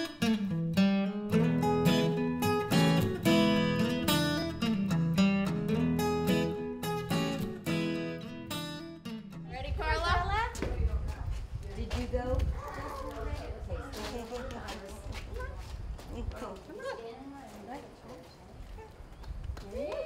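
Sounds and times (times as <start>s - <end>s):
acoustic guitar music: 0.0s - 10.5s
outdoor background noise: 0.0s - 20.0s
voices: 9.5s - 19.0s.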